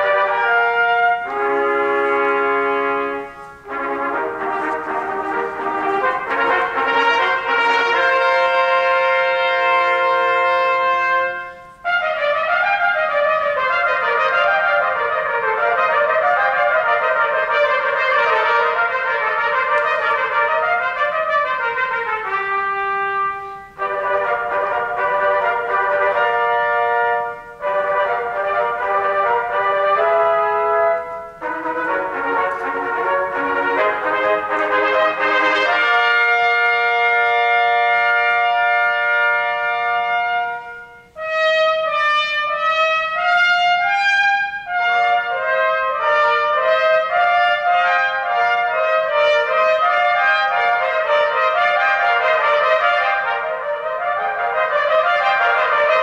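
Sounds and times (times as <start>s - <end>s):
trumpets playing together: 0.0s - 56.0s.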